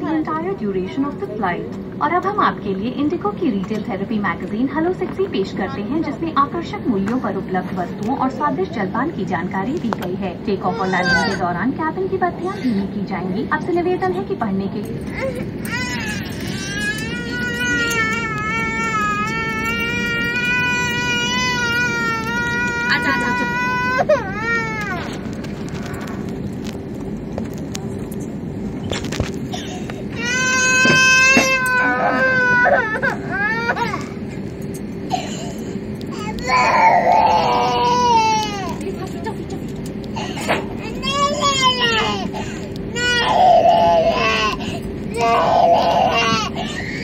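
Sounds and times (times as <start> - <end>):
airliner cabin rumble: 0.0 - 47.0
baby crying: 10.7 - 11.4, 15.1 - 25.1, 29.6 - 34.2, 36.1 - 38.8, 40.2 - 47.0.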